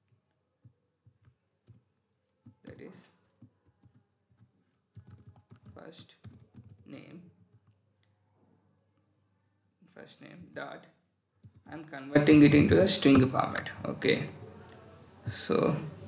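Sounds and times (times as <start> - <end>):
typing on computer keyboard: 0.0 - 7.8, 11.4 - 11.9.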